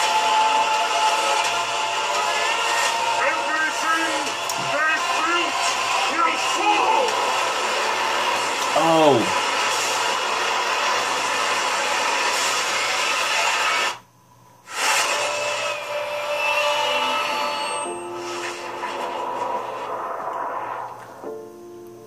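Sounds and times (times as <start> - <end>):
movie trailer score and effects: 0.0 - 14.0, 14.6 - 21.8.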